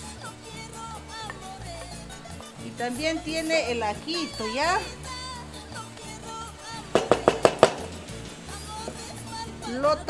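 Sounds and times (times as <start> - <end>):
background music: 0.0 - 10.0
bowl knocking against metal pot: 6.9 - 8.1.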